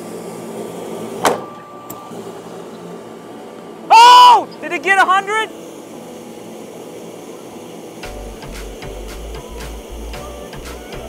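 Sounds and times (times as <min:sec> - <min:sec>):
inflatable blower running: 0:00.0 - 0:11.0
sharp pop: 0:01.2 - 0:01.5.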